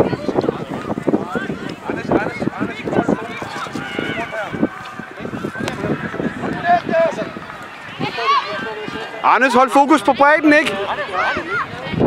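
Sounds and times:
voices calling and shouting: 0:00.0 - 0:12.0.

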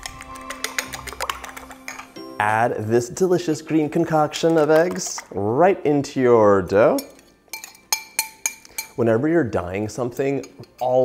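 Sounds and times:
glass clinks: 0:06.9 - 0:09.0.

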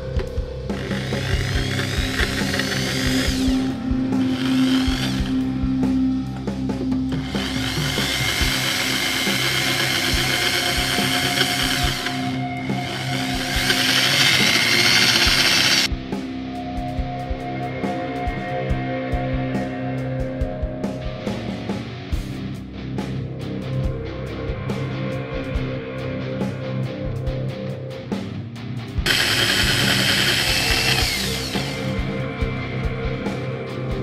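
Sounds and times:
background music: 0:00.0 - 0:34.0
electric drill whining: 0:00.6 - 0:05.6, 0:07.1 - 0:15.9, 0:29.0 - 0:32.2
sanding wood: 0:12.9 - 0:15.9, 0:29.1 - 0:31.7.

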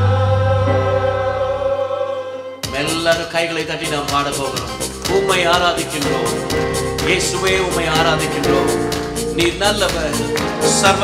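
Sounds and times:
sustained keyboard chord: 0:00.6 - 0:02.4
violin long note: 0:00.6 - 0:02.5.

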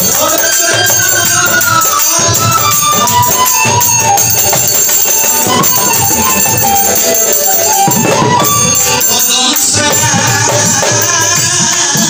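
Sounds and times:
folk music with steady beat: 0:00.0 - 0:12.0
jingling hand percussion: 0:00.0 - 0:12.0.

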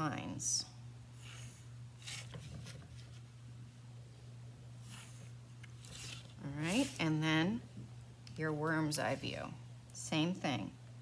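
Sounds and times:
low steady hum: 0:00.0 - 0:11.0
paper sliding on desk: 0:01.2 - 0:03.2, 0:04.8 - 0:07.0
pencil scratching along ruler: 0:04.8 - 0:07.2.

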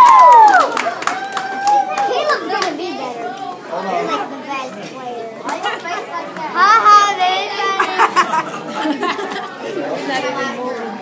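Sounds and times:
children chattering and calling out: 0:01.5 - 0:11.0.

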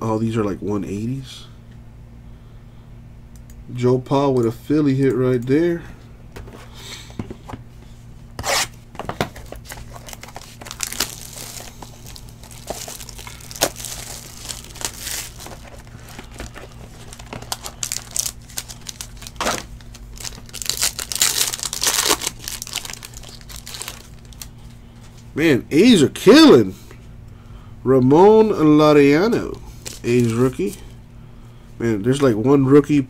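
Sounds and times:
plastic shrink-wrap tearing: 0:09.6 - 0:24.7, 0:29.8 - 0:30.9.

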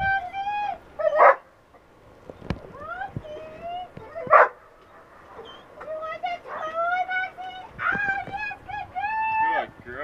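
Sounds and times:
dog barking: 0:01.1 - 0:01.5, 0:04.3 - 0:05.5
dog whining: 0:05.4 - 0:05.9.

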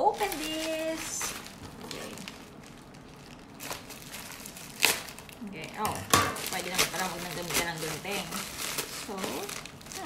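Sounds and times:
plastic mailer bag crinkling: 0:00.0 - 0:05.8, 0:06.4 - 0:10.0.

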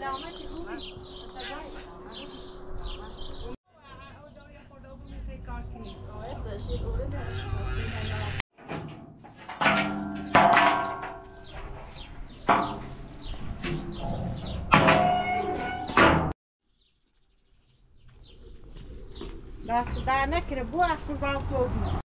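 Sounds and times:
woman's voice: 0:00.0 - 0:08.4, 0:19.6 - 0:22.0
metallic bangs and clanks: 0:08.5 - 0:16.4.

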